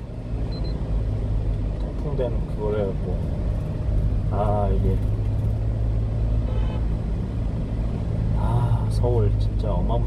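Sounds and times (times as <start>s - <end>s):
truck engine and road noise: 0.0s - 10.0s.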